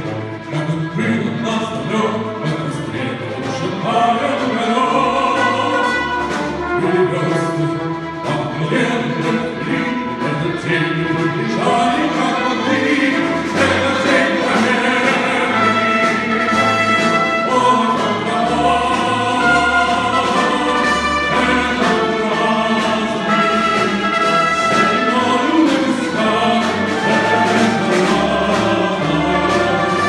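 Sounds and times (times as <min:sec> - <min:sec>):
symphony orchestra playing march: 0:00.0 - 0:30.0
tenor voice singing: 0:00.0 - 0:30.0.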